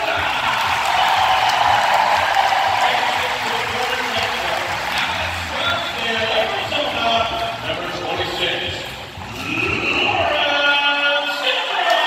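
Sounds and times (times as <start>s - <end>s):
crowd cheering and applauding: 0.0s - 7.6s
music playing: 0.0s - 12.0s.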